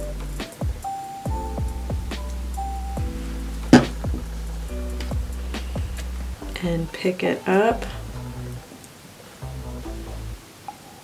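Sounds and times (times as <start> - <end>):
background music: 0.0 - 8.6, 9.4 - 10.5.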